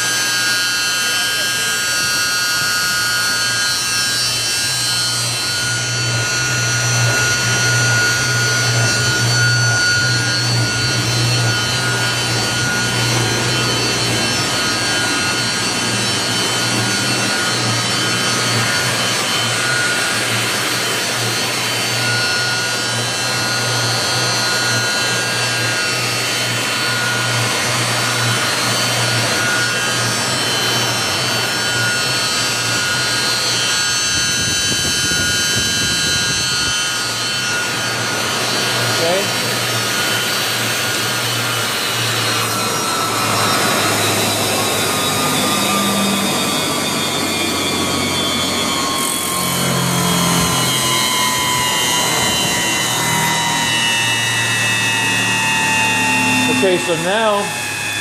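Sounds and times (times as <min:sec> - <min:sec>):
food processor motor hum: 0:00.0 - 0:58.0
high whining tones: 0:00.0 - 0:58.0.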